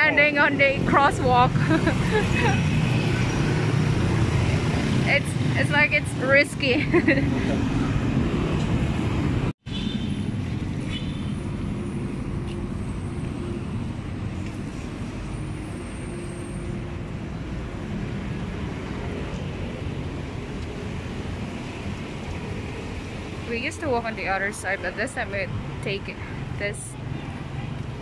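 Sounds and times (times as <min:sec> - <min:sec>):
street traffic passing: 0:00.0 - 0:28.0.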